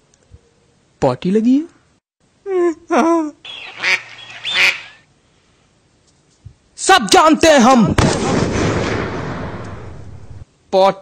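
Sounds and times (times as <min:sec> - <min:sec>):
comic squawking cries: 0:03.4 - 0:05.1.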